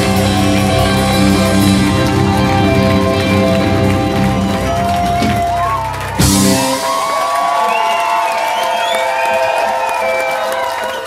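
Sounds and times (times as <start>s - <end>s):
rock band holding a chord: 0.0s - 7.7s
audience cheering and whooping: 0.0s - 11.0s.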